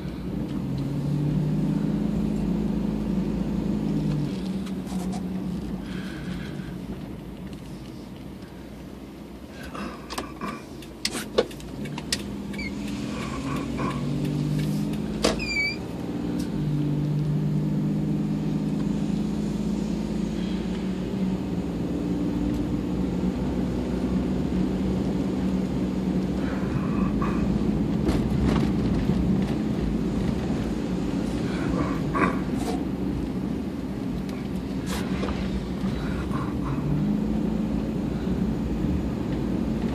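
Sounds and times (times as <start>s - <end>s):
car engine and road noise: 0.0s - 39.9s.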